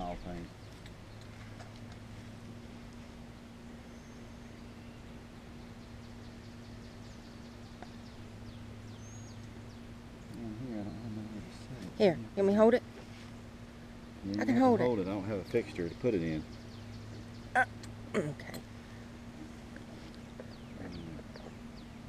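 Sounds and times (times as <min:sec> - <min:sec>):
faint bird chirps: 0:03.2 - 0:11.8.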